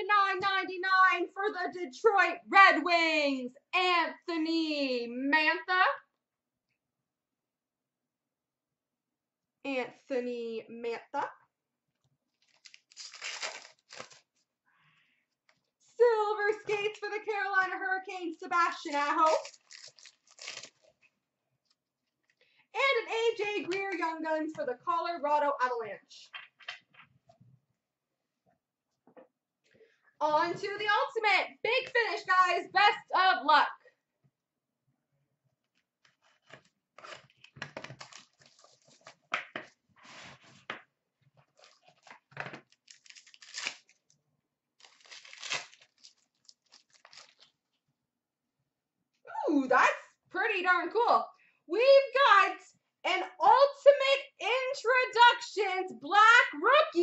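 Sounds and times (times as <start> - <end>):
trading cards rustling: 12.4 - 14.3, 44.8 - 47.5
packaging tearing and crinkling: 12.4 - 14.4, 19.3 - 21.0, 36.5 - 39.3, 41.5 - 44.2, 44.8 - 47.6.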